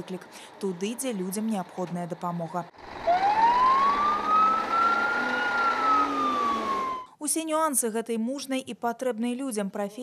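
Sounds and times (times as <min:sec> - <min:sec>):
truck engine running: 0:00.0 - 0:07.0
fire engine siren wailing: 0:02.8 - 0:07.1.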